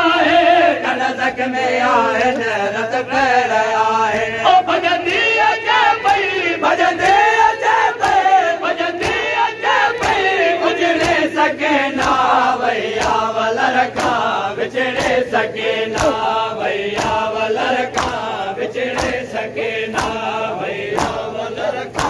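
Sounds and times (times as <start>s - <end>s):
men chanting a lament: 0.0s - 22.0s
rhythmic chest-beating slaps: 0.0s - 22.0s.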